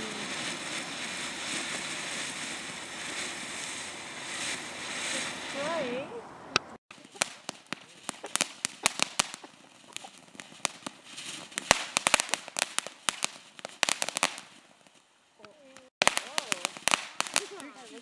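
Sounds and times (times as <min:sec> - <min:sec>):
firework hiss: 0:00.0 - 0:06.2, 0:06.9 - 0:18.0
firework crackling pops: 0:00.0 - 0:18.0.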